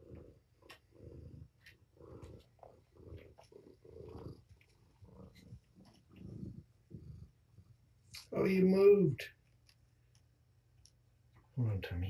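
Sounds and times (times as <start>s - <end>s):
kitten purring: 0.0s - 8.4s.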